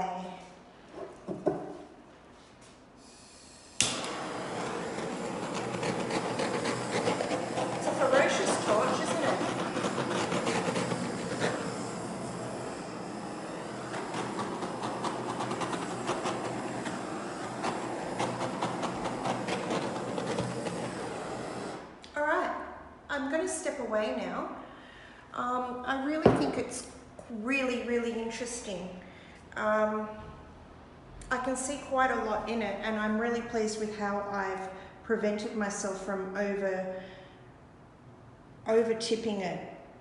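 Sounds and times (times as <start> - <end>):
torch flame hissing: 3.0 - 22.0.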